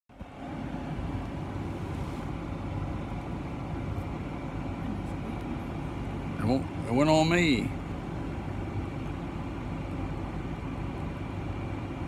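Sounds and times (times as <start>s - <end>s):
vehicle engine idling: 0.1s - 12.0s.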